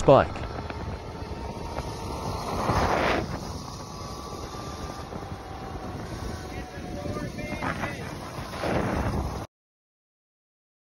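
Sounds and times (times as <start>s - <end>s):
road and tyre noise: 0.0s - 9.5s
wind buffeting microphone: 0.0s - 9.5s.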